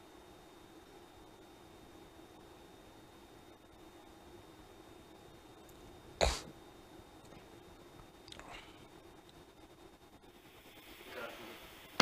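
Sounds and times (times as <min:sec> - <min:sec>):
faint steady hiss: 0:00.0 - 0:12.0
person coughing: 0:06.2 - 0:06.5.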